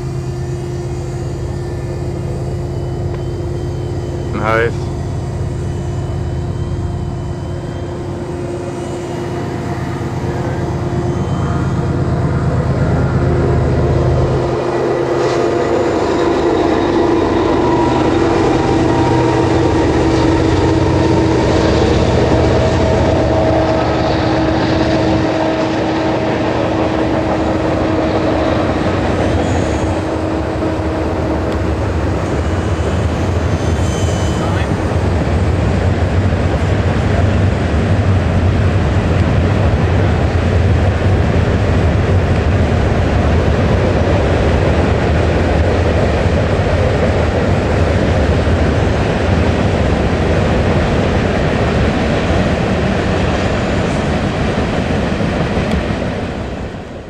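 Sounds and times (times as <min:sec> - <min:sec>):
constant low rumble: 0:00.0 - 0:57.0.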